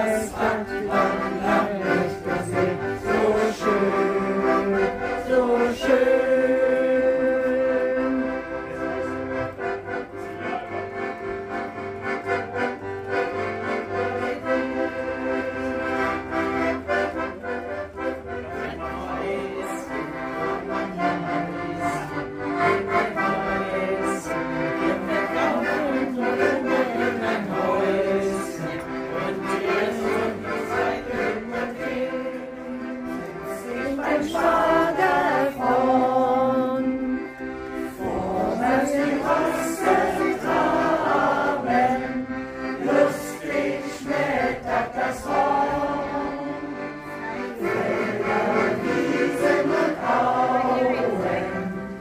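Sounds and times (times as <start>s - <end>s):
piano accordion playing a tune: 0.0s - 52.0s.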